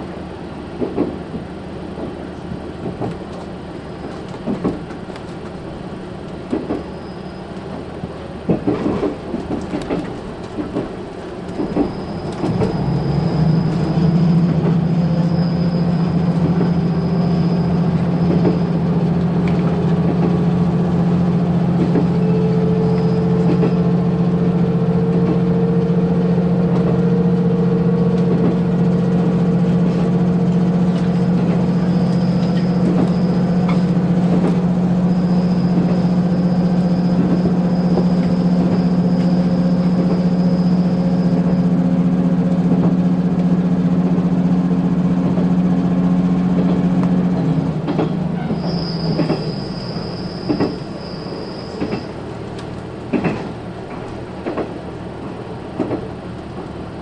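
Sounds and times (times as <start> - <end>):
rail joint clicks: 0.0 - 57.0
railcar diesel engine drone: 0.0 - 57.0
high wheel squeal: 6.8 - 7.9, 11.5 - 42.4, 47.4 - 52.3.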